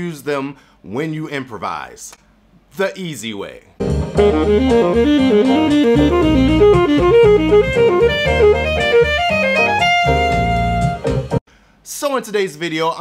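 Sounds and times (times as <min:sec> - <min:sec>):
bass and drum backing: 0:03.8 - 0:11.4
saxophone playing fast runs: 0:04.2 - 0:11.3.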